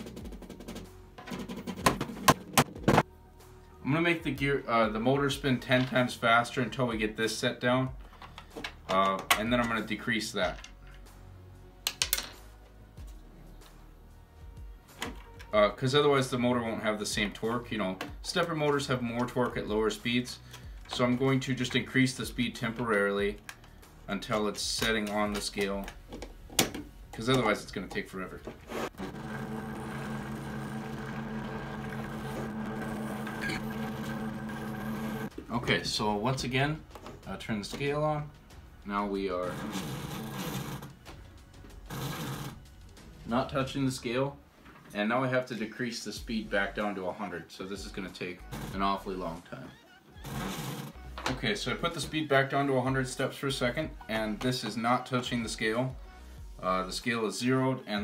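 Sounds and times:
motor and gears whirring: 28.7s - 35.3s.

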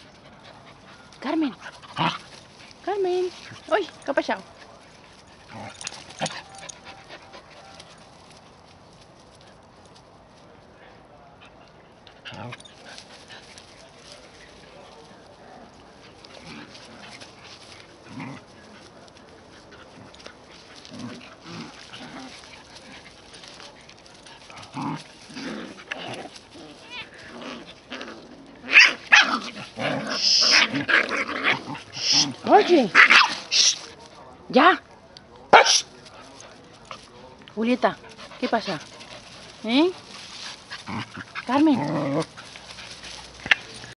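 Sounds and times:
puppies scuffling: 0.0s - 10.7s, 11.5s - 35.0s, 35.7s - 43.9s
outdoor background: 0.0s - 43.9s
puppy barking: 35.5s - 35.8s.

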